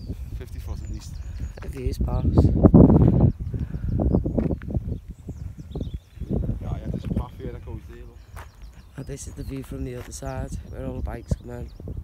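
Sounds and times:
birds chirping faintly: 0.0s - 12.0s
wind buffeting microphone: 0.0s - 12.0s.

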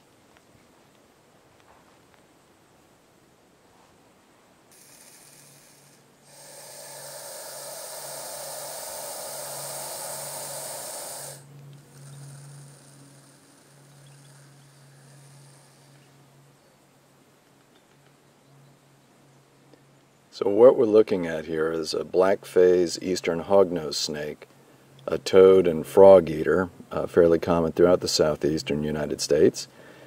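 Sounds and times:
faint low hum: 0.0s - 30.0s
snake hissing: 4.7s - 16.0s.

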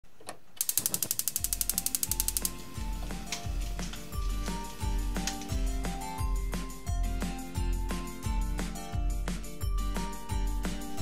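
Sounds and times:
fast mechanical clicks: 0.6s - 4.0s
music with steady bass beat: 1.2s - 11.0s.

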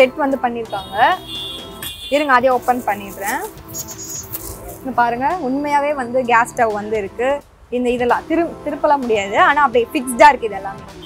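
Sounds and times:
woman talking: 0.0s - 1.2s, 2.1s - 3.5s, 4.8s - 10.8s
background music: 0.0s - 11.0s.

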